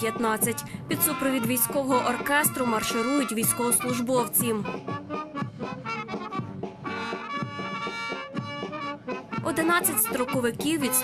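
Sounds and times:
brass band playing a march: 5.0s - 10.3s.

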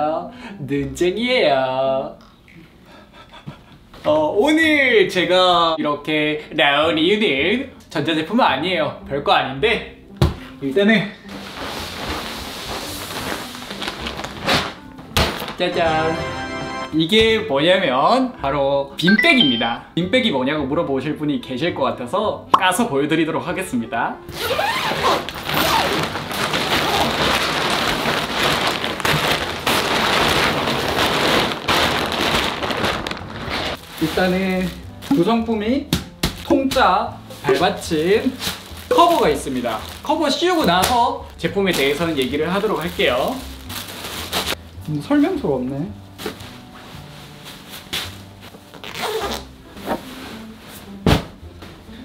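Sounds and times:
plastic bag rustling and crinkling: 11.2s - 15.8s, 24.4s - 35.4s, 36.4s - 45.1s, 46.1s - 51.0s.

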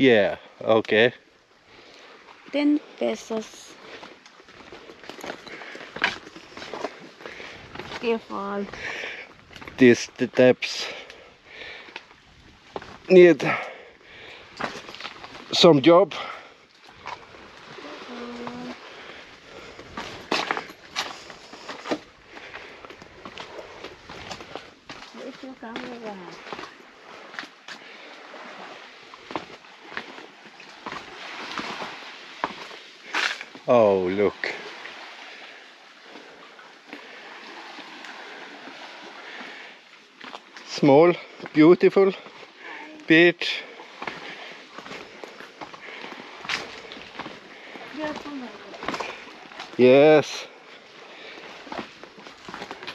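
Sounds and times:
sandal footsteps on stone steps: 4.5s - 9.8s, 19.5s - 27.8s, 30.8s - 33.6s, 44.0s - 49.8s, 51.4s - 52.9s.

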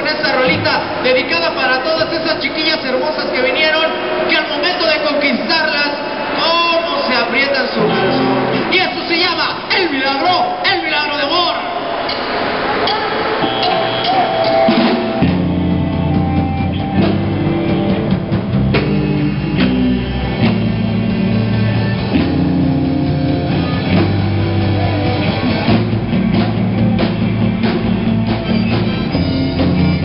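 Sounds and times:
live rock band playing: 7.7s - 9.7s, 12.2s - 30.0s
electric guitar notes: 7.8s - 8.7s, 12.8s - 30.0s.

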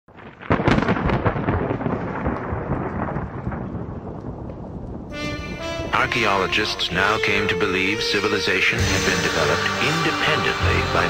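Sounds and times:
thunderclap with rolling crackle: 0.1s - 8.3s.

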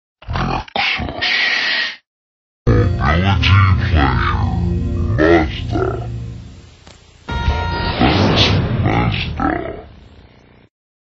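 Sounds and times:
voice delivering tagline: 2.7s - 6.6s
logo jingle music: 2.7s - 8.8s.

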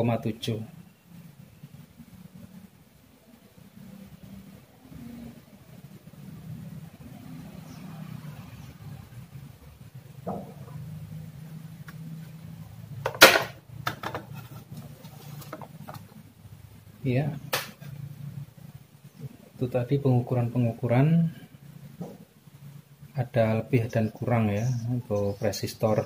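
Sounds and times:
low steady hum: 0.0s - 26.0s
objects knocking on wooden bench: 10.2s - 10.7s, 13.0s - 14.4s.

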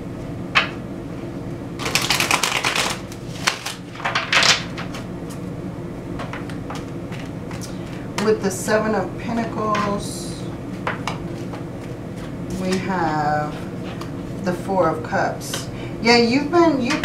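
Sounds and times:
steady low hum: 0.0s - 17.0s
cards being shuffled: 1.8s - 5.4s, 6.3s - 8.0s.

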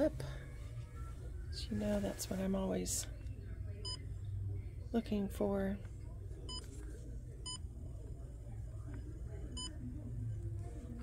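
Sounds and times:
low hum of room noise: 0.0s - 11.0s.

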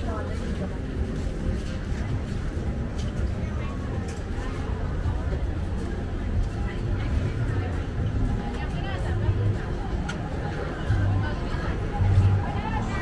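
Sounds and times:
passers-by talking: 0.0s - 13.0s.

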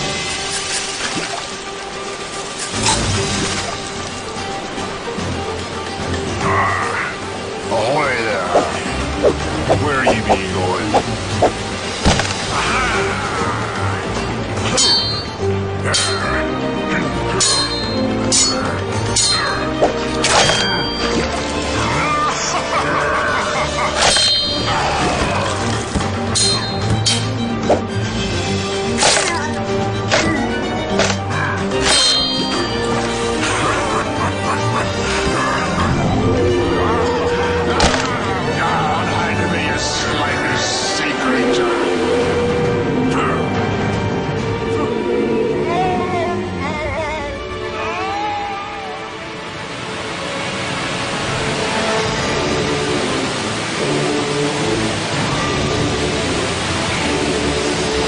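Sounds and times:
low soundtrack effects: 0.0s - 58.0s
loud steady rushing noise: 7.1s - 13.6s, 34.0s - 47.1s, 49.1s - 58.0s.

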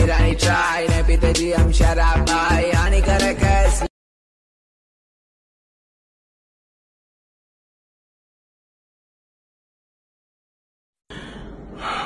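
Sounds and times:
man inhaling breathily: 11.1s - 12.0s.

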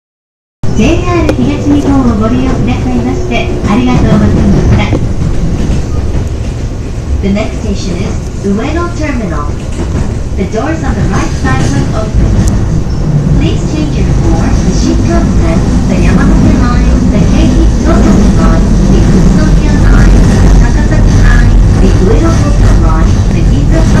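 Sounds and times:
train rumble inside carriage: 0.6s - 24.0s
voices talking: 0.8s - 5.2s, 13.4s - 24.0s.

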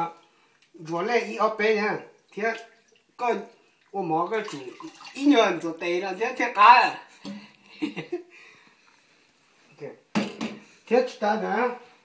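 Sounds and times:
water sloshing: 2.2s - 5.8s.

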